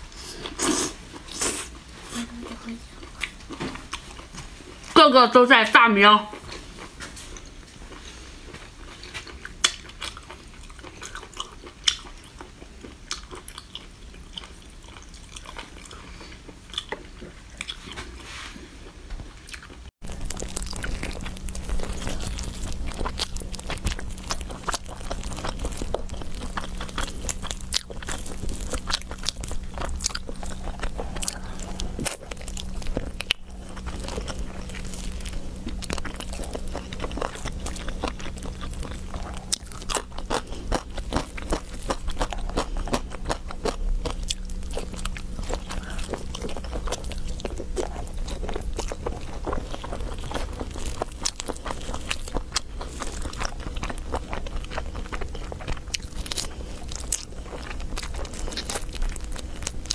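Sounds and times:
chewing roast chicken: 0.0 - 5.0, 6.4 - 59.9
steady low hum: 19.8 - 59.9.

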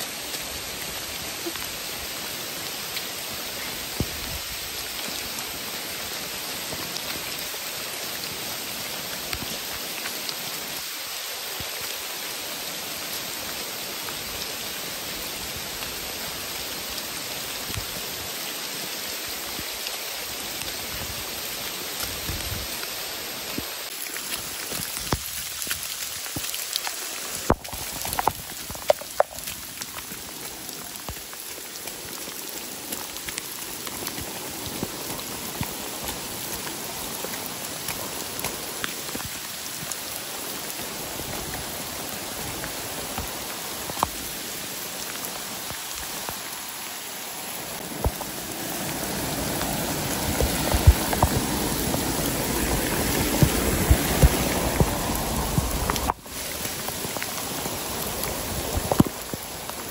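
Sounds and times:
heavy rain on foliage: 0.0 - 59.9.

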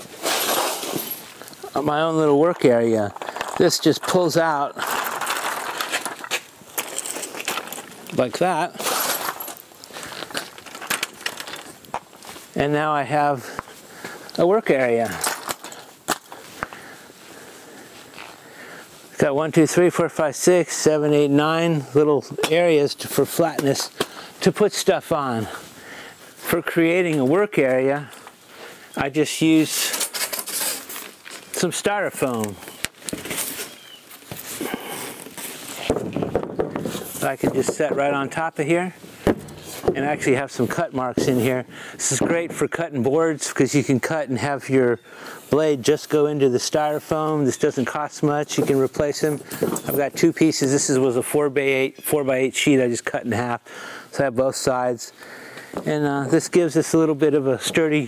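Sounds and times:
foam board scraping: 0.0 - 1.4, 8.4 - 10.4, 33.1 - 38.1, 39.4 - 41.5.

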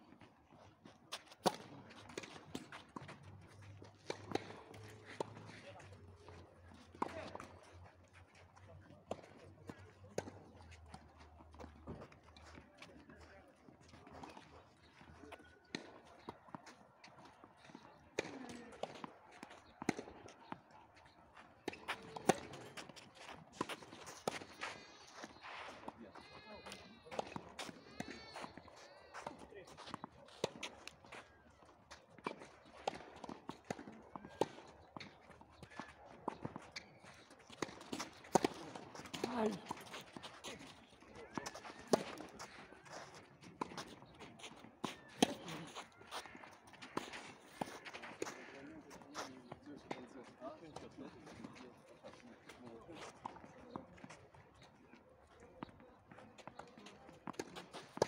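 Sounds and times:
players' footsteps: 0.0 - 58.0
players' voices: 0.2 - 58.0
rackets hitting tennis ball: 1.1 - 5.8, 17.1 - 26.0, 32.1 - 50.1.

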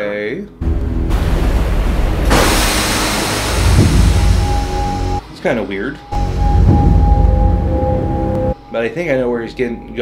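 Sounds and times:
rushing noise effect: 0.6 - 5.2
low orchestral music: 5.6 - 10.0.

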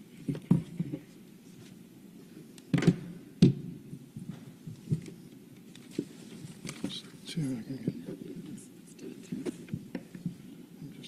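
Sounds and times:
faint low room murmur: 0.0 - 11.0.

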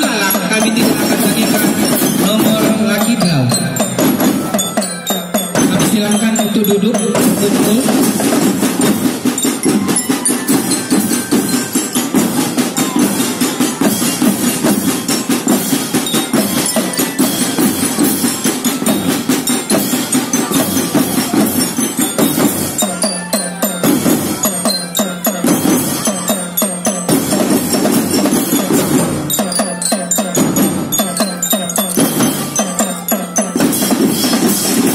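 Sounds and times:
bell lyre melody: 0.0 - 34.9
snare and tenor drums beating: 0.0 - 34.9.

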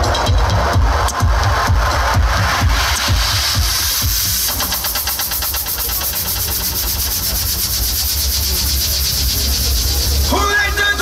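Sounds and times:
machine-like buzzing dance track: 0.0 - 11.0.

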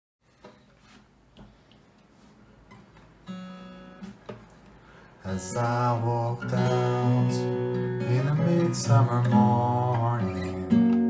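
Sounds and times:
guitar handling knocks: 4.0 - 4.5.

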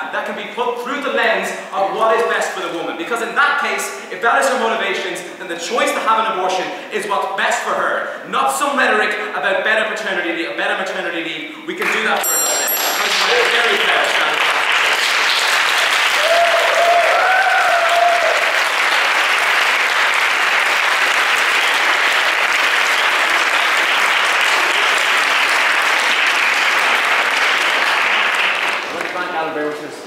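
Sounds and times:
audience applauding: 11.8 - 29.6.

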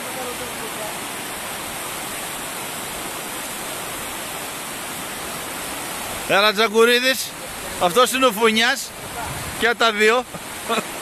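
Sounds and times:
rushing flowing water: 0.0 - 11.0.

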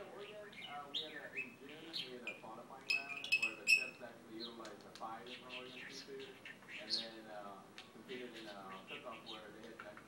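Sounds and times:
budgerigar warbling: 0.2 - 4.0.

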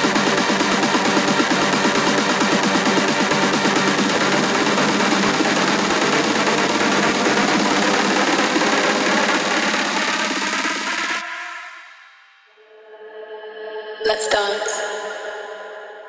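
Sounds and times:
techno build-up with fast hits: 0.0 - 12.1.

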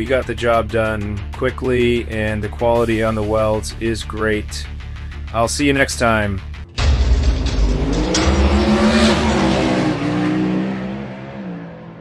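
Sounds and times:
car engine revving: 6.4 - 12.0.

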